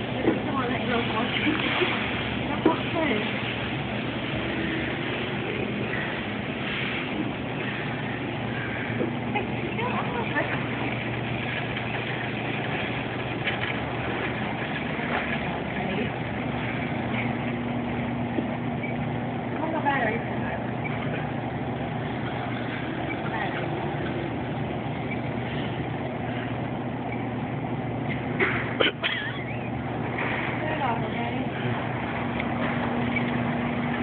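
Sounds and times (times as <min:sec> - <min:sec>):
low electrical hum: 0:00.0 - 0:34.0.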